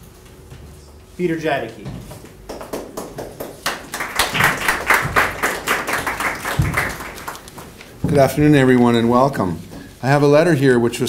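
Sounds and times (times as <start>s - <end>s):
audience applauding: 2.5s - 8.0s.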